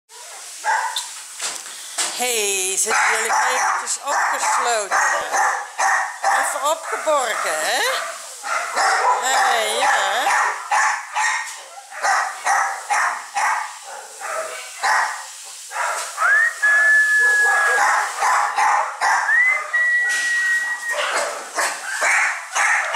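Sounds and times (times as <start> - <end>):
puppies yapping: 2.9 - 22.9
high-pitched puppy whines: 19.3 - 21.2.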